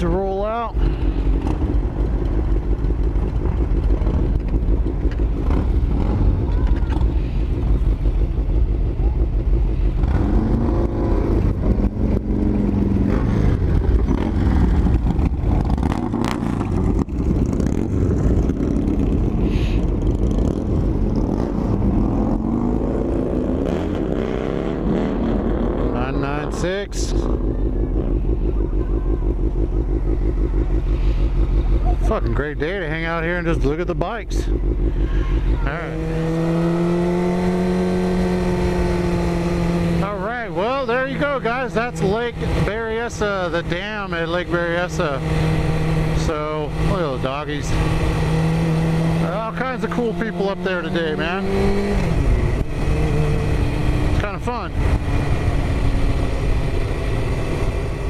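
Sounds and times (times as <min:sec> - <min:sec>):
motorcycle engines rumbling: 0:00.0 - 0:58.0.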